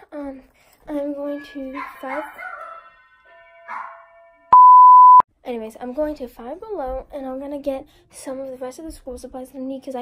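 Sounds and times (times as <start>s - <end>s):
test-card tone beep: 4.6s - 5.2s.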